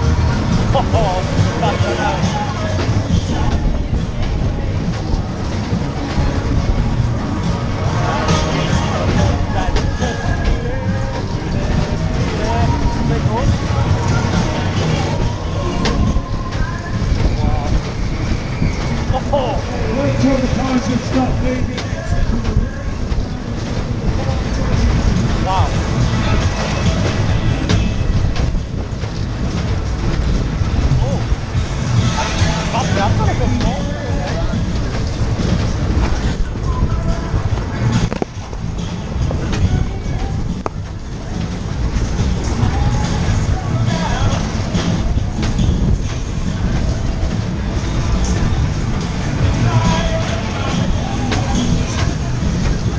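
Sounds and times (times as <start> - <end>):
ride car rumbling and rattling: 0.0 - 52.9.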